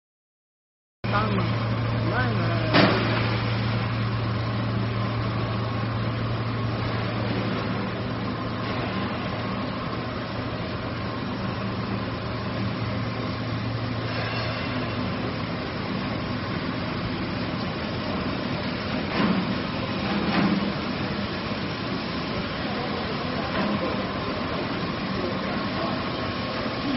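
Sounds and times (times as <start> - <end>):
machine running with low hum: 1.0 - 26.9.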